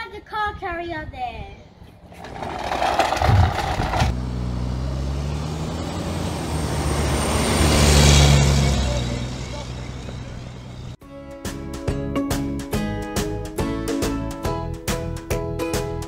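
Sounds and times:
vehicle motor running: 2.0 - 11.0.

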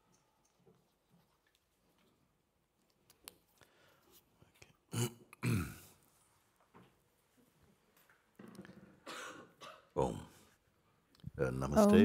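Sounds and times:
person clearing throat: 4.9 - 6.0, 9.0 - 10.3
person coughing: 5.0 - 6.0, 9.0 - 10.0.

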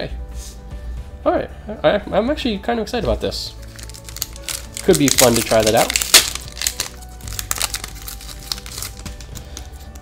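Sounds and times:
soft background music: 0.0 - 10.0
foil wrapper crinkling: 3.6 - 10.0.

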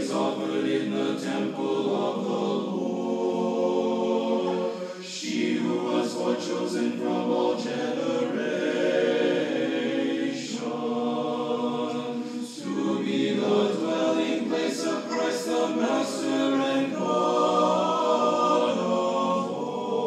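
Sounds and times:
choir singing a cappella chant: 0.0 - 20.0.

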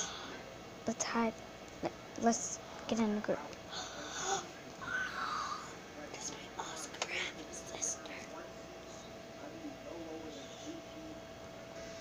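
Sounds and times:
girl whispering: 2.2 - 8.4.

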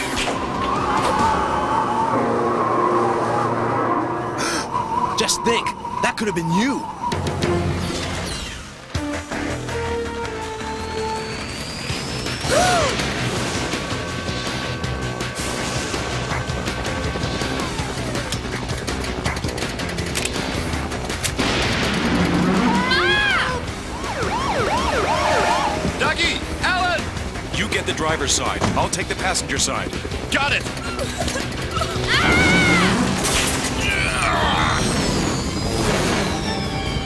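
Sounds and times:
rising whistle-like glide: 0.0 - 8.7
dramatic background music: 0.0 - 37.0
short rising-and-falling tones: 0.4 - 8.7.

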